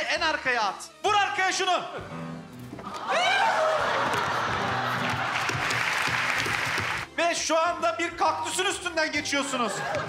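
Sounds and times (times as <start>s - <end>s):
light background music: 0.0s - 10.0s
audience applauding and cheering: 2.8s - 7.1s.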